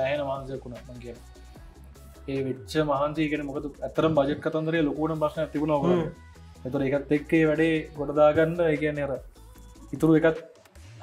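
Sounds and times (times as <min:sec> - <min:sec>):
man humming: 0:05.8 - 0:06.2.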